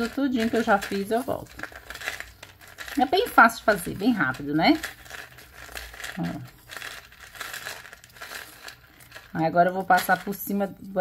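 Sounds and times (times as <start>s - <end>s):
masking tape crinkling: 0.0s - 10.6s.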